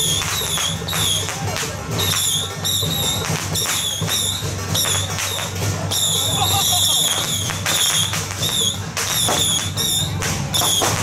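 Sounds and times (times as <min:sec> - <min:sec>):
shrill whistle blasts: 0:00.0 - 0:01.3, 0:02.0 - 0:11.0.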